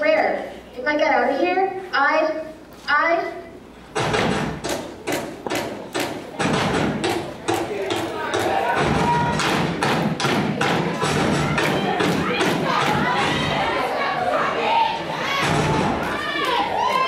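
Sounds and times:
feet and broom handles thumping wood: 4.0 - 13.4
voices: 5.0 - 17.0
music: 8.8 - 12.9.

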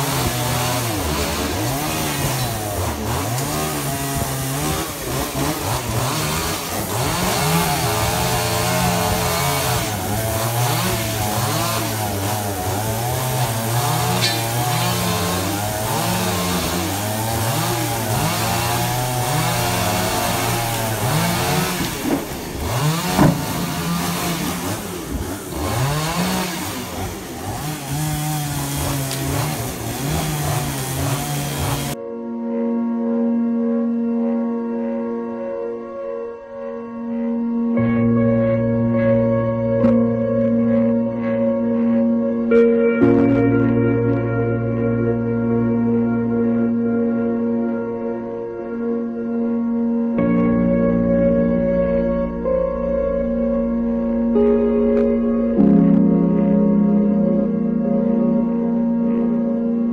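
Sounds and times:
chainsaw revving and cutting: 0.0 - 32.0.

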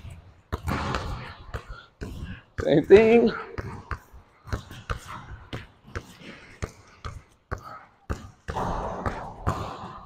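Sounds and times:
basketball bouncing on court floor: 0.0 - 10.0.

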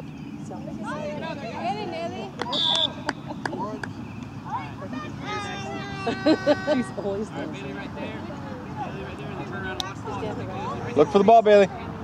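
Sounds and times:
whistle blast: 2.5 - 3.1
children's voices: 4.4 - 7.2.

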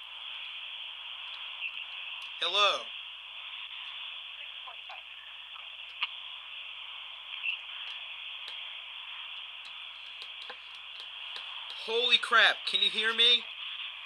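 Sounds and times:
telephone line hiss: 0.0 - 14.0
faint clicks: 7.3 - 8.7, 9.3 - 11.8.

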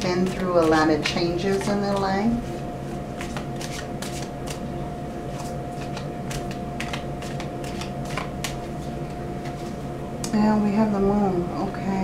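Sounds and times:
cards being shuffled by hand: 0.2 - 2.6, 3.2 - 4.7, 5.3 - 9.8.

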